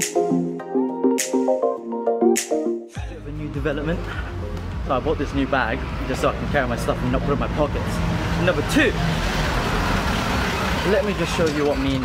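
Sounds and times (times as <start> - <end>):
street noise: 3.0 - 12.0
vehicle engine rumbling: 3.0 - 12.0.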